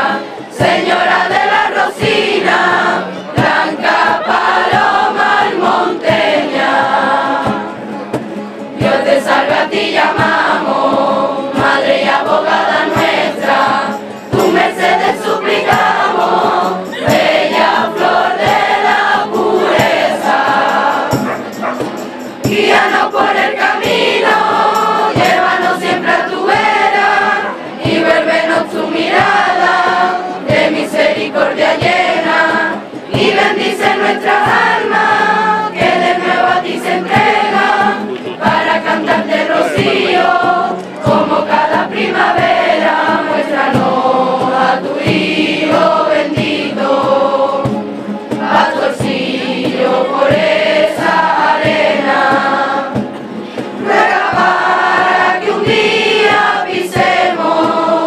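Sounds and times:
children's choir singing: 0.0s - 58.0s
strummed guitar: 0.0s - 58.0s.

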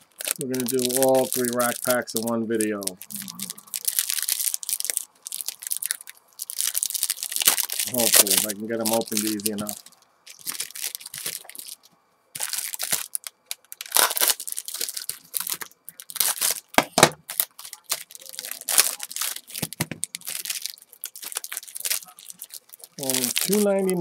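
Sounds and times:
cellophane wrapper crinkling and tearing: 0.0s - 24.0s.

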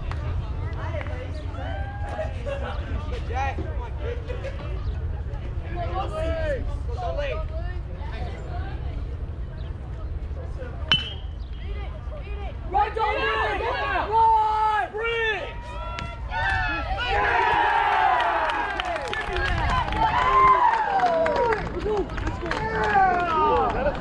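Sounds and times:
crowd shouting and cheering: 1.5s - 2.5s, 12.7s - 24.0s
metal bat hitting ball: 10.9s - 11.3s.

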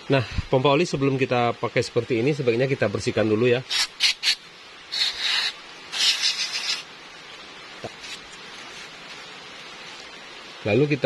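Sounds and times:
aerosol spray hissing: 3.7s - 6.9s.

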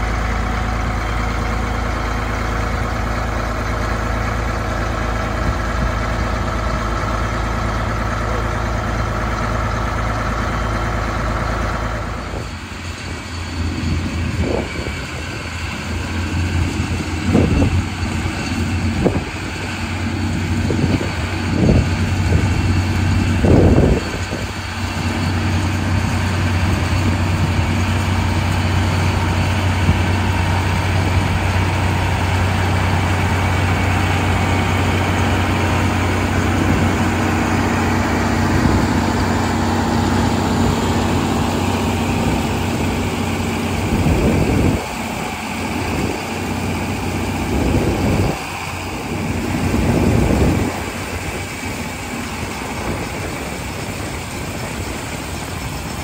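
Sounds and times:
combine machinery running: 0.0s - 56.0s
tractor engine under load: 0.0s - 56.0s.

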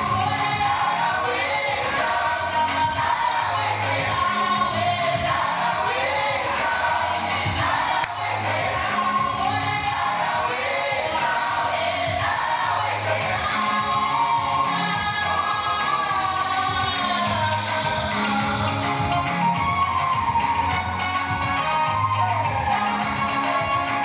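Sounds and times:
backing voices singing: 0.0s - 24.0s
band with bass line: 0.0s - 24.0s
woman singing lead: 0.0s - 24.0s.

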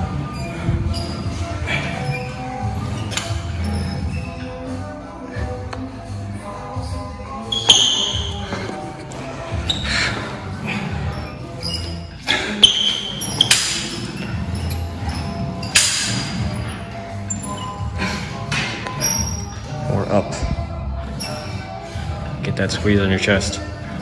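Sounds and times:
background music: 0.0s - 24.0s
gym machine metallic clanks: 12.7s - 16.6s.

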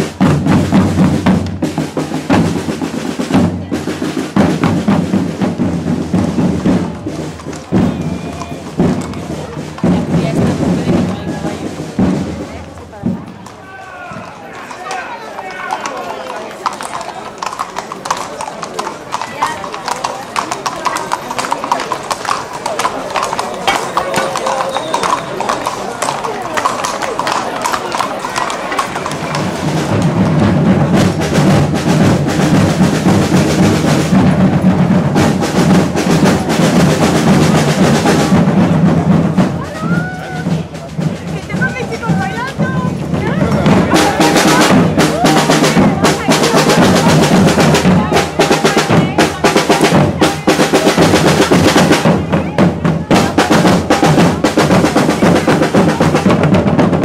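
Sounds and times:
drumming and music: 0.0s - 14.4s, 28.8s - 57.0s
crowd chatter: 0.0s - 57.0s
hooves clip-clopping on cobblestones: 0.0s - 57.0s.

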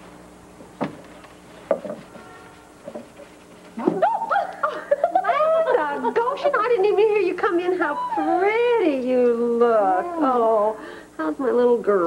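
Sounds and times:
woman's sing-song drawn-out voice: 7.6s - 11.4s.

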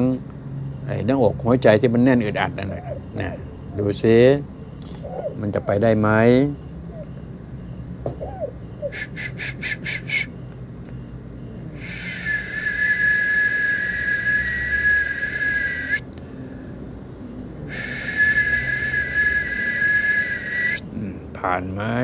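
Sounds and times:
high whistling tone: 8.2s - 10.4s, 11.7s - 16.0s, 17.7s - 20.9s.

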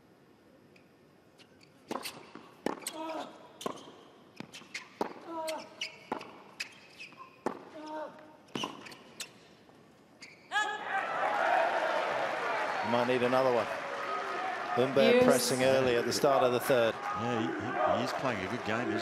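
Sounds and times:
crowd applauding and cheering: 10.9s - 17.0s.

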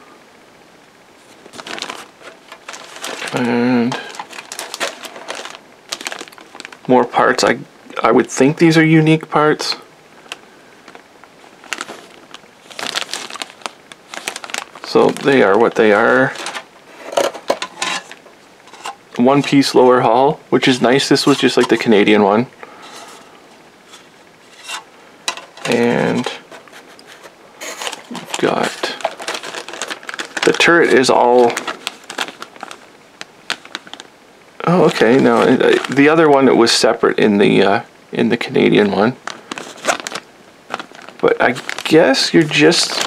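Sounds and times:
plastic bag crinkling: 1.2s - 7.6s, 10.2s - 36.9s, 38.6s - 43.0s.

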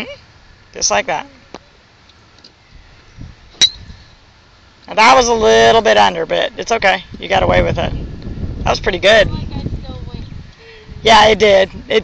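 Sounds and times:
golf club striking ball: 3.5s - 3.9s.

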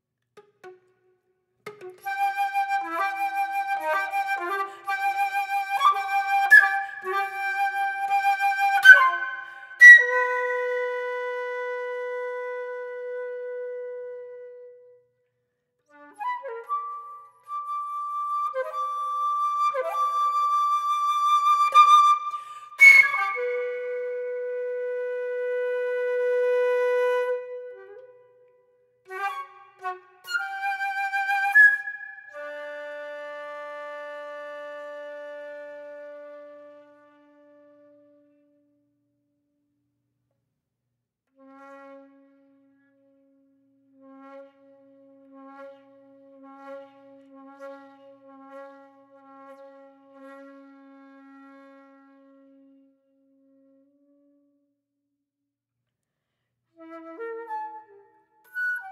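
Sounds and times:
solo flute playing: 1.7s - 15.2s, 15.9s - 38.7s, 44.0s - 54.4s, 56.8s - 58.9s.

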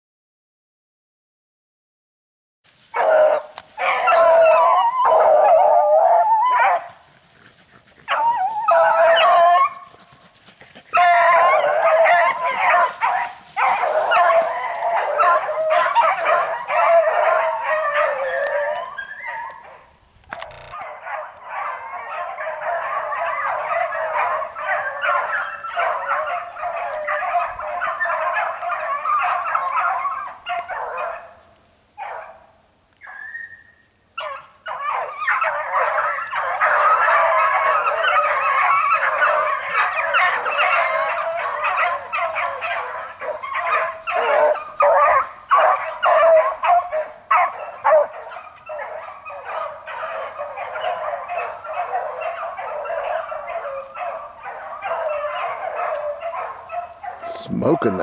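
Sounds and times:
pack of dogs baying: 2.9s - 33.5s, 34.2s - 58.0s.

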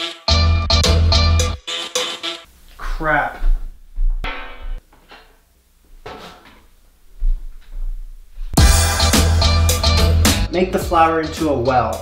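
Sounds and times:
background music: 0.0s - 2.5s, 8.6s - 12.0s.

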